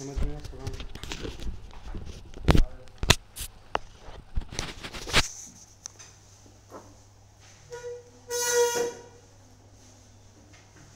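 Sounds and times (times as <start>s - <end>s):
short high-pitched honk: 7.7s - 9.2s.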